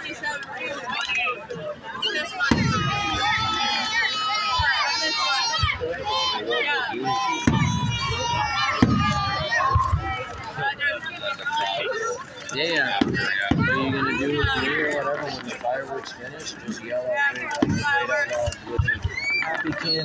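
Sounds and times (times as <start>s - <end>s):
crowd voices: 0.0s - 20.0s
pitched firework sounds: 2.4s - 3.5s, 7.4s - 10.4s
fireworks booming: 2.5s - 3.5s, 7.4s - 10.0s.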